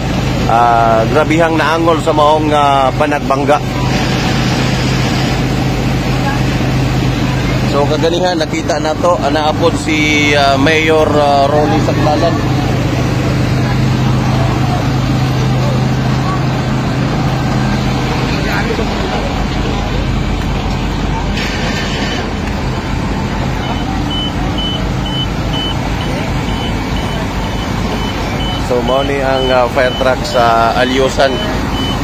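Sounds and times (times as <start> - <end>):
street noise: 0.0 - 32.0
truck engine humming: 0.0 - 32.0
reversing alarm beeping: 23.4 - 32.0.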